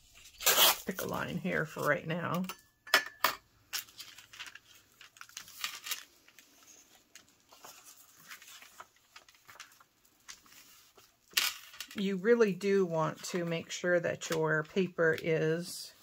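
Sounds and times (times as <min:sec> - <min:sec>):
paper rustling: 0:03.8 - 0:12.0.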